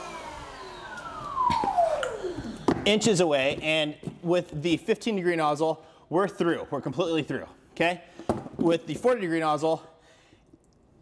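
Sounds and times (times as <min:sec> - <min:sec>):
pressure washer motor winding down: 0:00.0 - 0:03.1.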